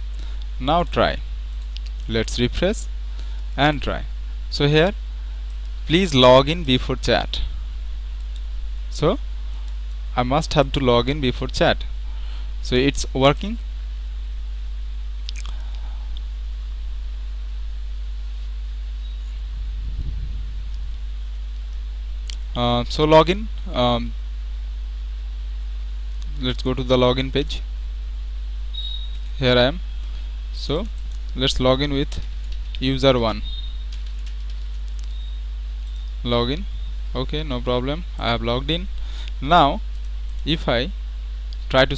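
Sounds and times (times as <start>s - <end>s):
electrical mains hum: 0.0s - 41.9s
faint high whine: 0.0s - 41.9s
faint clicks: 33.9s - 35.2s.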